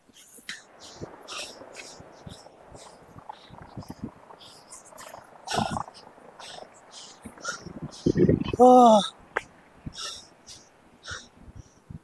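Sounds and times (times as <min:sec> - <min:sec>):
man breathing hard: 0:00.5 - 0:08.2, 0:09.9 - 0:11.8.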